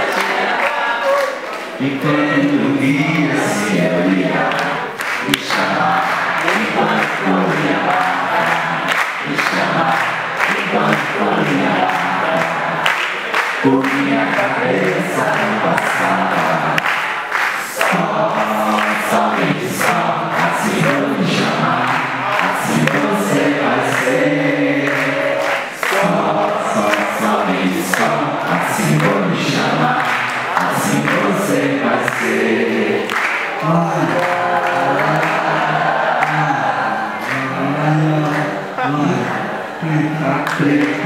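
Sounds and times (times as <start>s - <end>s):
audience singing in chorus: 0.0s - 41.0s.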